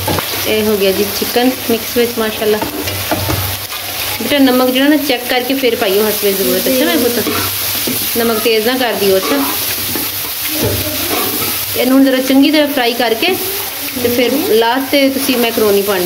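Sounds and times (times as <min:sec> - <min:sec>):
frying sizzle: 0:00.0 - 0:16.0.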